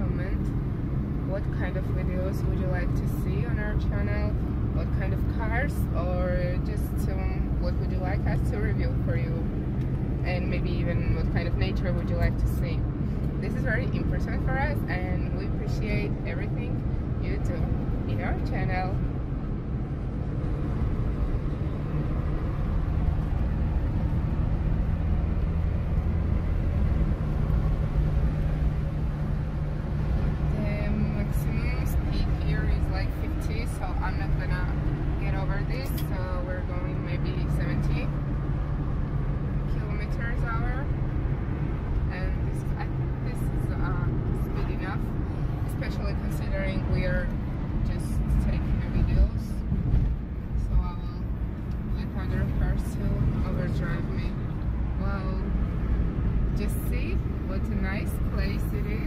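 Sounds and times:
car engine and tyre drone: 0:00.0 - 0:59.0.

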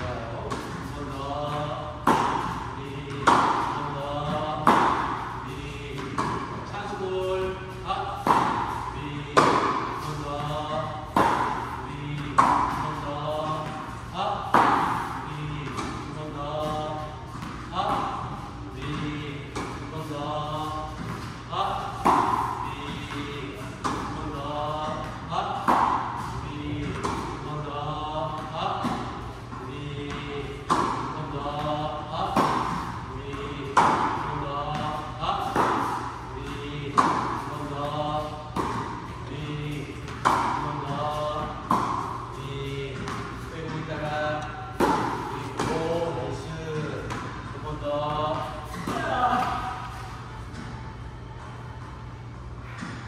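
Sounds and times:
racket hitting tennis balls: 0:00.0 - 0:51.6, 0:52.6 - 0:53.0.

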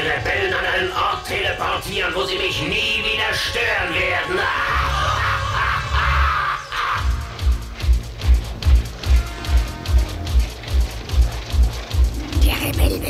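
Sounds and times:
deep regular throb: 0:07.1 - 0:13.0
cartoon music: 0:12.2 - 0:13.0.

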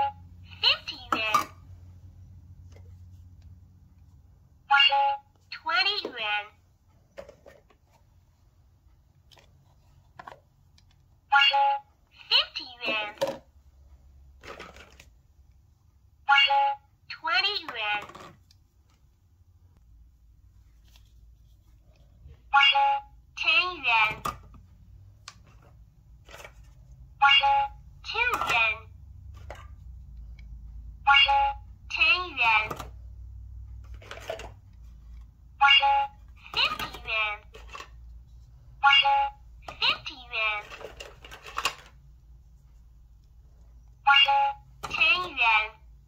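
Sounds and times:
toy cash register beep: 0:22.6 - 0:23.1, 0:27.2 - 0:28.6, 0:31.1 - 0:31.7, 0:35.6 - 0:37.1, 0:38.8 - 0:39.4, 0:44.1 - 0:45.3.

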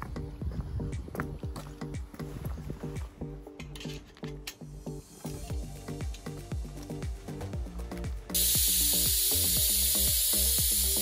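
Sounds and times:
music with steady beat: 0:00.0 - 0:11.0
spray lance hissing: 0:08.3 - 0:11.0.

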